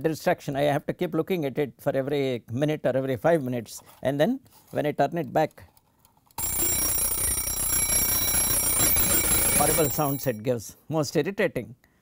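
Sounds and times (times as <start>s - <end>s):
timer bell ringing: 6.4s - 10.4s.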